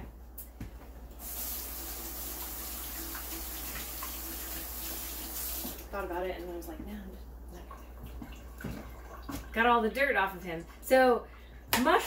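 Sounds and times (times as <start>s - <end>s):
faucet running into metal sink: 1.2s - 5.9s.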